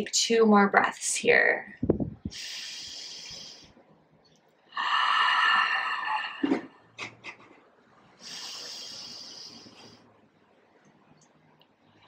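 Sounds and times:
woman breathing deeply: 0:02.3 - 0:03.7, 0:04.7 - 0:06.6, 0:08.2 - 0:10.2.

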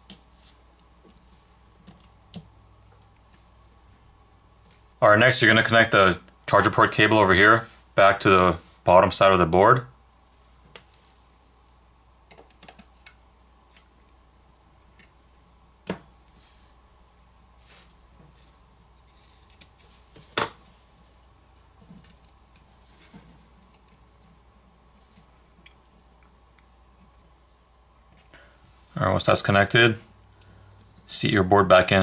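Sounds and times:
fingers tapping phone parts: 0:12.3 - 0:13.9.

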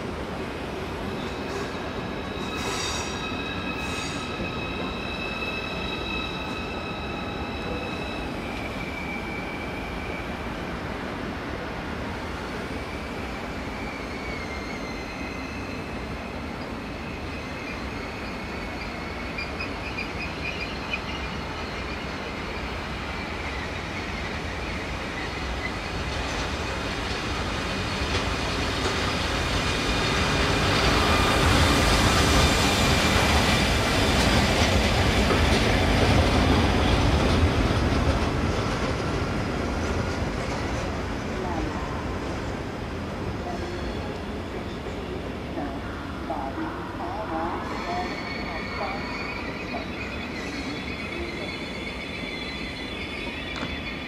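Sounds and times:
electric locomotive approaching: 0:00.0 - 0:54.0
train rolling rumble: 0:00.0 - 0:54.0
high wheel squeals: 0:01.2 - 0:10.5, 0:13.6 - 0:26.0, 0:47.7 - 0:54.0.

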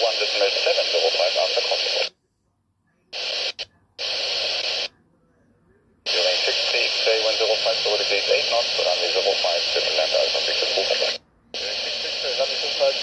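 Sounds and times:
radio hiss: 0:00.0 - 0:02.1, 0:03.1 - 0:04.9, 0:06.0 - 0:13.0
radio voice transmission: 0:00.0 - 0:02.2, 0:03.0 - 0:05.0, 0:05.8 - 0:13.0.

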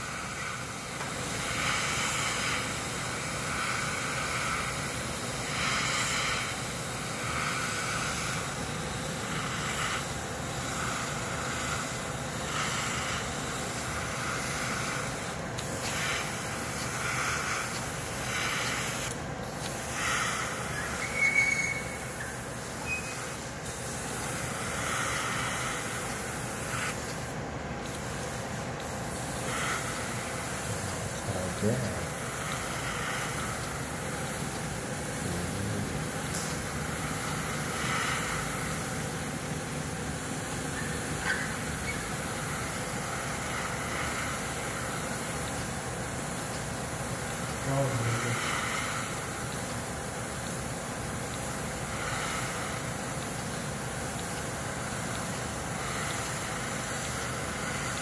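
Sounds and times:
airbrush hissing in short bursts: 0:00.0 - 0:58.0.

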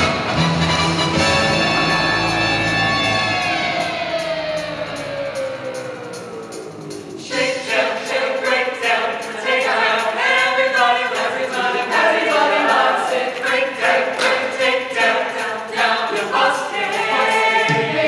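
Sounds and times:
choir singing in harmony: 0:07.2 - 0:18.0.

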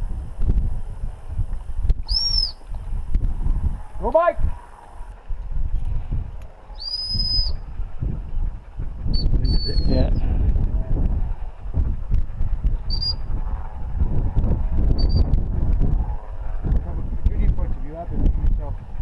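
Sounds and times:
wind rumble on microphone: 0:00.0 - 0:19.0.

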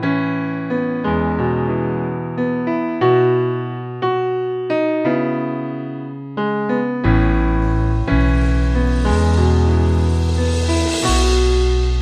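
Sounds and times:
electric keyboard chords: 0:00.0 - 0:12.0.

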